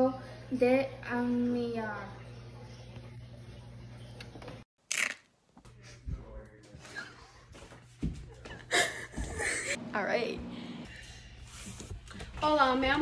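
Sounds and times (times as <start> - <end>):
low room hum: 5.6 - 12.4.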